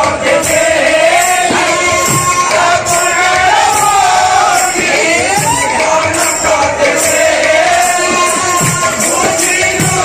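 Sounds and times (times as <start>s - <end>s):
barrel drums beating: 0.0s - 10.0s
crowd shouting and cheering: 0.0s - 10.0s
voices singing and shouting: 0.0s - 10.0s.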